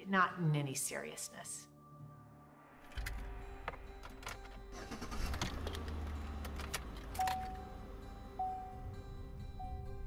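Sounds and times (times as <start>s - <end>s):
background music: 0.0s - 10.0s
engine and road rumble: 3.0s - 10.0s.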